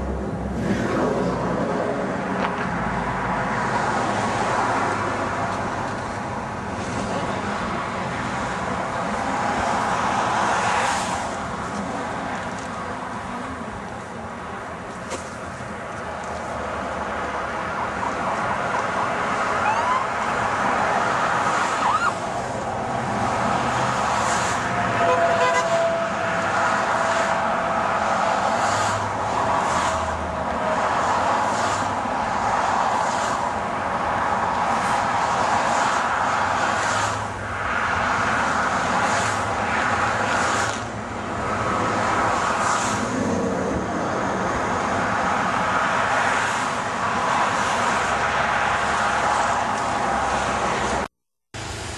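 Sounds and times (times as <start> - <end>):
road traffic passing: 0.0 - 51.9
brief steady tone: 25.0 - 26.5.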